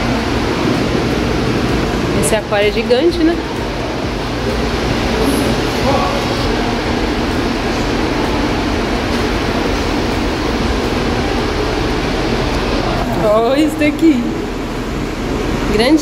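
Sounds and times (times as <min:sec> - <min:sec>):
loud mechanical rushing hum: 0:00.0 - 0:16.0.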